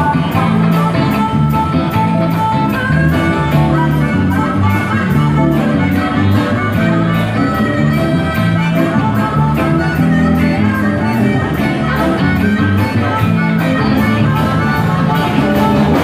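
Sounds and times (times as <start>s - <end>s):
harmonica: 0.0s - 16.0s
live band playing: 0.0s - 16.0s.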